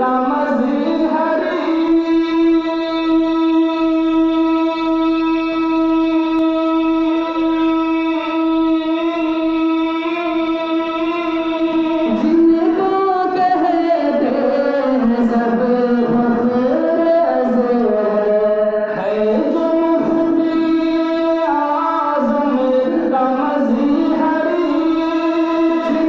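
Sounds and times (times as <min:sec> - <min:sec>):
man singing long note: 0:00.0 - 0:26.0.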